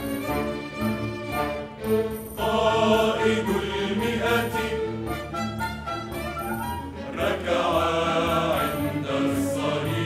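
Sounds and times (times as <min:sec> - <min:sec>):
string orchestra: 0:00.0 - 0:10.0
mixed choir singing: 0:02.4 - 0:05.4, 0:07.0 - 0:10.0.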